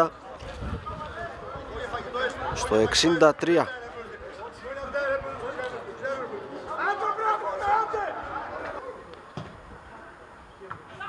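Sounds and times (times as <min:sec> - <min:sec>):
men talking and calling out: 0:00.0 - 0:11.0.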